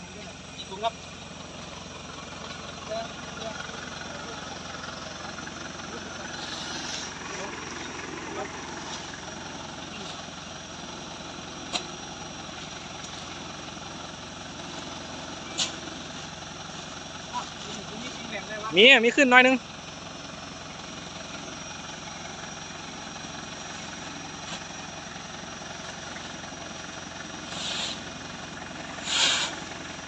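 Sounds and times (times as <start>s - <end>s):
truck engine idling: 0.0s - 30.0s.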